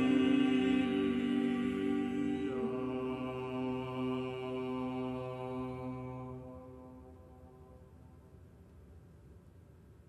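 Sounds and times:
vocal ensemble singing chord: 0:00.0 - 0:07.6.

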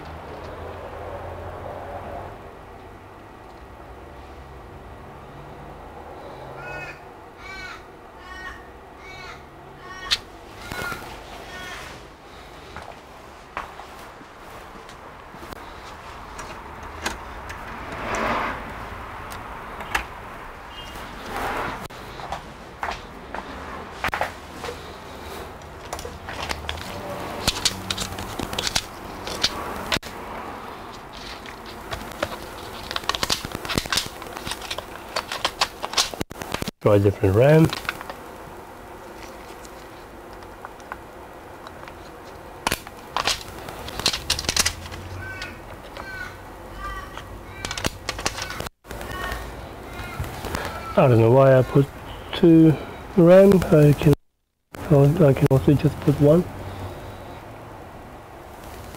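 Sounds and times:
bird calling: 0:06.4 - 0:11.8, 0:19.7 - 0:21.3, 0:44.8 - 0:53.2
hands handling laptop: 0:25.6 - 0:30.1, 0:30.9 - 0:36.7, 0:41.6 - 0:45.2, 0:47.2 - 0:49.4.

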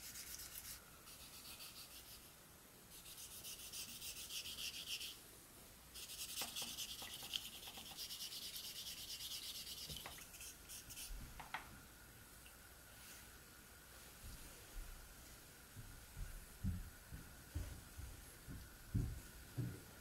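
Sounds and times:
sandpaper rubbing wood under water: 0:06.0 - 0:11.2.

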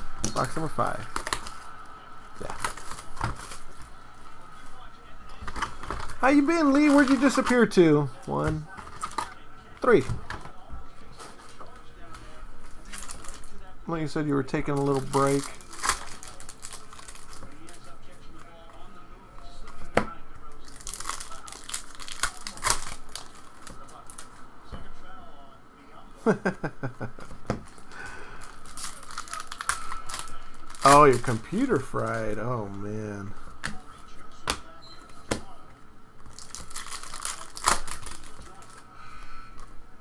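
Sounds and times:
plastic shrink-wrap crinkling: 0:00.4 - 0:01.8, 0:02.4 - 0:04.0, 0:05.4 - 0:10.0, 0:12.8 - 0:13.6, 0:14.7 - 0:18.0, 0:20.5 - 0:24.4, 0:28.4 - 0:32.8, 0:36.2 - 0:38.9.

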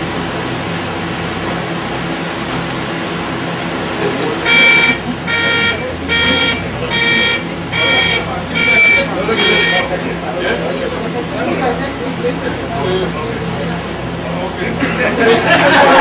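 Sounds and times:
group of people talking: 0:00.2 - 0:16.0
horn beeping: 0:04.2 - 0:10.7.

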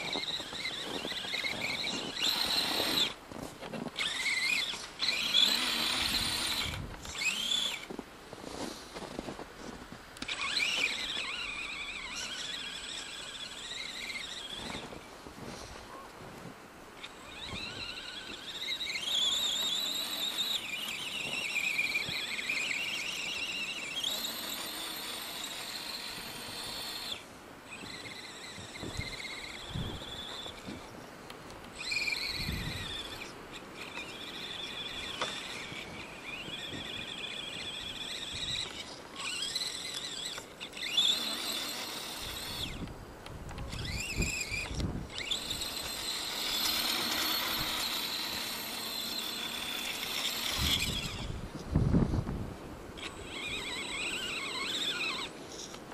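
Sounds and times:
toy truck electric motor whining: 0:00.0 - 0:08.0, 0:09.0 - 0:15.0, 0:17.0 - 0:30.9, 0:31.7 - 0:42.9, 0:43.5 - 0:51.6, 0:52.9 - 0:55.9.

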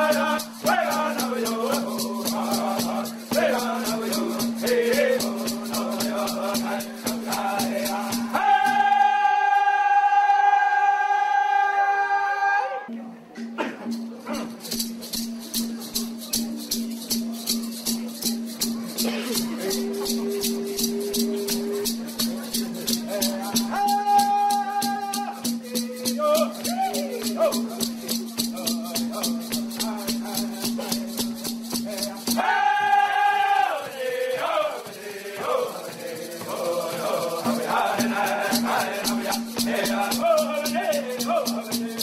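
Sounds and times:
water drum beat: 0:00.0 - 0:09.2, 0:14.3 - 0:42.0
men singing: 0:00.0 - 0:12.6, 0:19.4 - 0:42.0.

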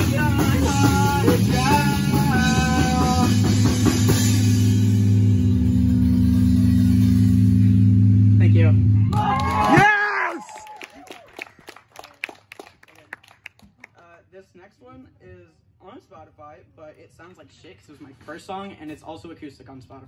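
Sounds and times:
person shouting: 0:09.1 - 0:10.8
scattered hand claps: 0:09.1 - 0:14.0.

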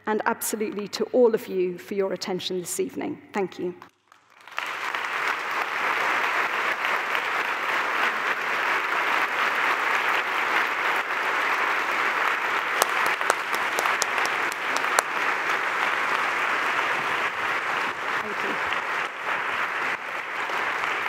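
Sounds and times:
audience applauding: 0:04.0 - 0:21.0.

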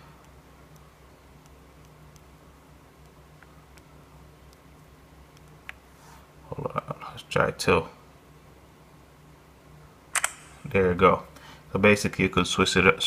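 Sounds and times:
faint low hum: 0:00.0 - 0:13.0
man speaking: 0:06.5 - 0:08.0, 0:10.6 - 0:13.0.

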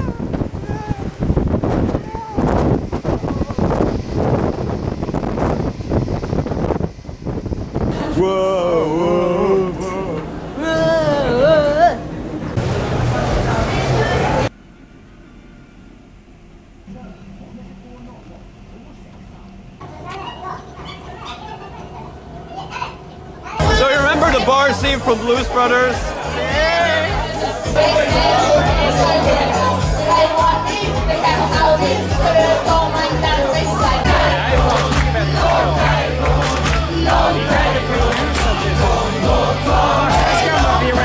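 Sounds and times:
wind buffeting microphone: 0:00.0 - 0:14.5
noisy room: 0:00.0 - 0:41.0
man talking loudly: 0:23.6 - 0:27.1.

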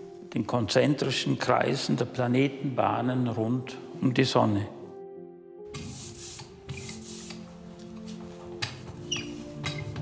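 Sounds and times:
soft music: 0:00.0 - 0:10.0
ink roller rubbing: 0:05.8 - 0:07.5, 0:08.6 - 0:10.0.

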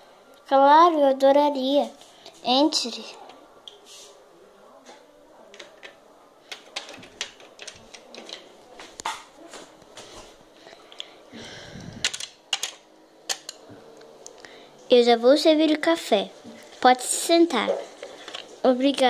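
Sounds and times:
plastic toys clicking and tapping: 0:05.5 - 0:09.1, 0:12.0 - 0:13.6, 0:18.0 - 0:19.0.

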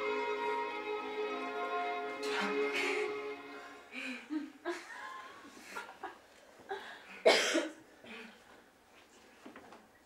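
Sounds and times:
person coughing: 0:07.2 - 0:07.8.

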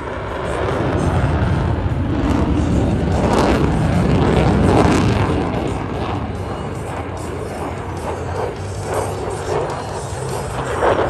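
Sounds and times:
fighter jet engine flying past: 0:00.0 - 0:11.0.

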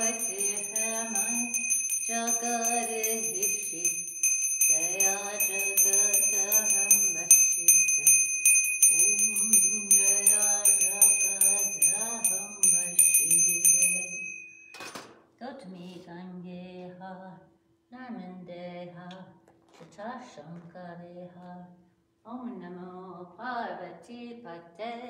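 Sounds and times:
voices singing: 0:00.0 - 0:14.2
brass hand bell ringing rapidly: 0:00.0 - 0:14.7.

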